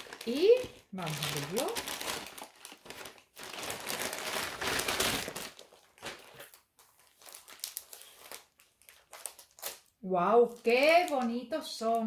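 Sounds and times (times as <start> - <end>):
packaging rustles and clicks: 0.0 - 9.9
envelope packaging crinkling: 0.0 - 12.0.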